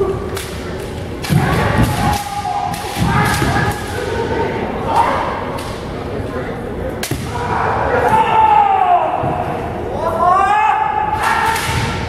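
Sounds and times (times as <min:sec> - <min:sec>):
people shouting loudly: 0:01.3 - 0:05.4, 0:07.2 - 0:12.0.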